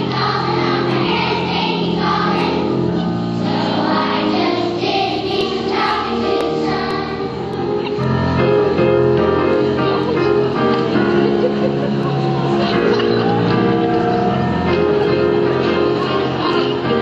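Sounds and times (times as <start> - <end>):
children's choir singing: 0.0 - 17.0.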